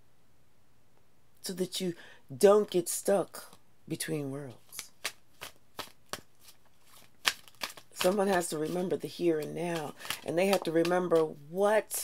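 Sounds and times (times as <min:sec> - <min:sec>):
cards snapping while shuffled: 0:04.7 - 0:11.3.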